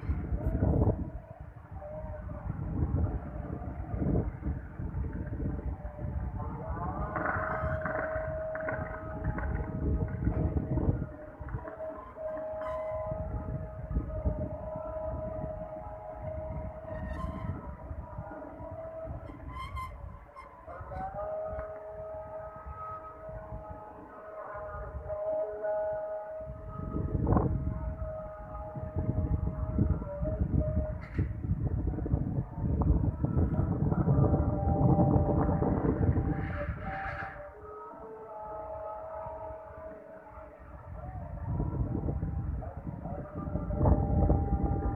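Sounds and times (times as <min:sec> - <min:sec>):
call to prayer over loudspeaker: 0:00.0 - 0:44.9.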